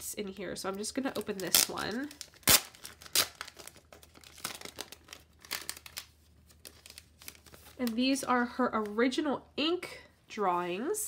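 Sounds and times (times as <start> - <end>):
plastic sleeve crinkling: 0.6 - 9.0.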